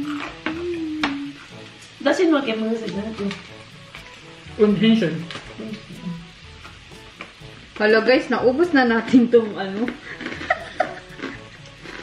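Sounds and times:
meat sizzling on a grill: 0.0s - 12.0s.

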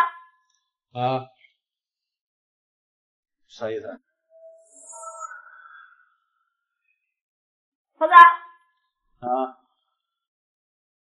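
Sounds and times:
soft ringing tone: 4.4s - 6.1s.

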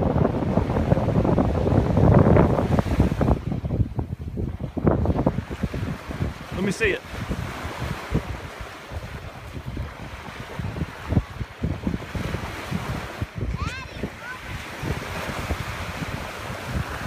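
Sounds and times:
surf: 0.0s - 17.0s
wind buffeting microphone: 0.0s - 17.0s.

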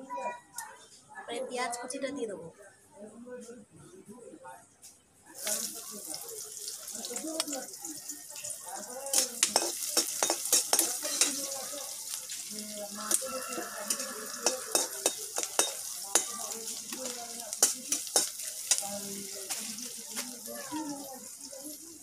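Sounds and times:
sizzle of frying in oil: 5.3s - 22.0s
spatula clicks on pan: 9.1s - 11.4s, 13.9s - 16.4s, 17.0s - 18.9s
metal spatula scraping a wok: 9.1s - 11.6s, 13.1s - 19.7s.

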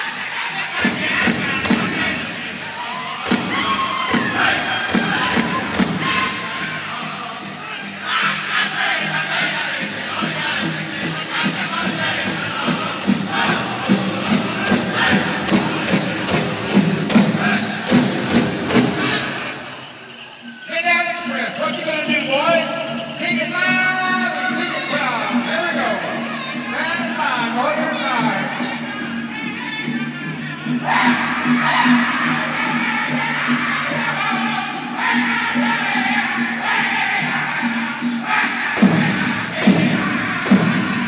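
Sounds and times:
high-pitched group singing: 0.0s - 20.7s, 22.5s - 41.0s
crowd: 0.0s - 41.0s
large drum steady beat: 0.7s - 7.0s, 10.0s - 19.5s, 38.2s - 41.0s
rising whoop: 2.8s - 5.4s.

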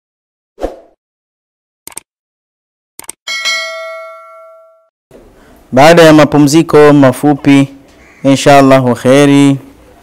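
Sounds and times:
notification bell chime: 3.3s - 4.9s.

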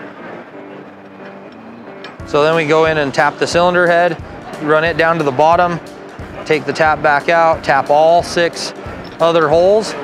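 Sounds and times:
busy exhibition hall noise: 0.0s - 10.0s.

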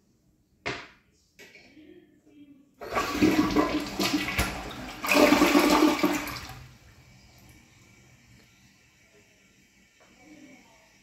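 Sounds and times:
toilet flushing: 2.8s - 7.6s.

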